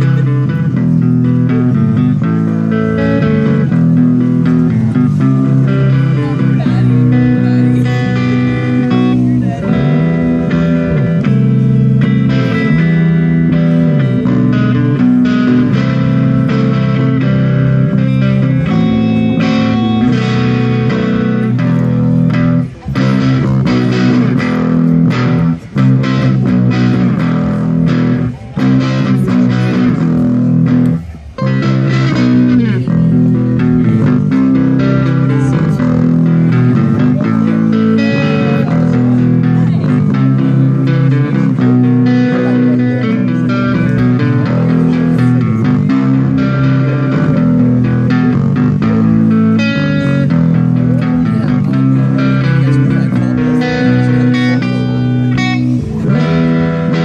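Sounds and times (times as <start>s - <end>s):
bass guitar: 0.0s - 57.0s
electric guitar: 0.0s - 57.0s.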